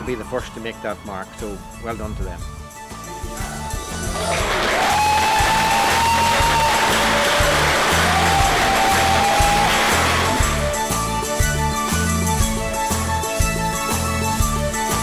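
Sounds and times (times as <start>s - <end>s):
background music with steady beat: 0.0s - 15.0s
group applause: 4.0s - 10.9s.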